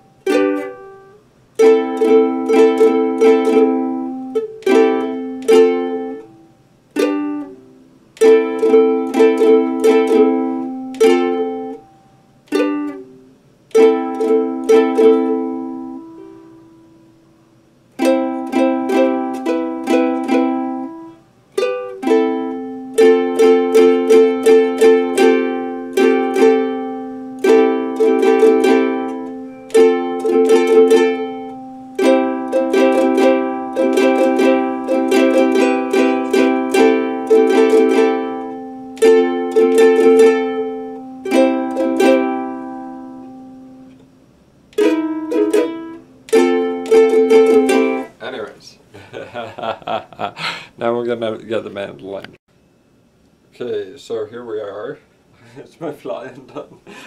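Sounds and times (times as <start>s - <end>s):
ukulele strumming chords: 0.0s - 17.2s, 17.9s - 48.5s.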